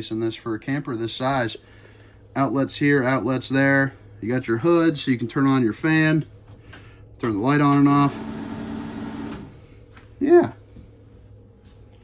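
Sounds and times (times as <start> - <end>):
exhaust fan whirring: 0.0 - 12.0.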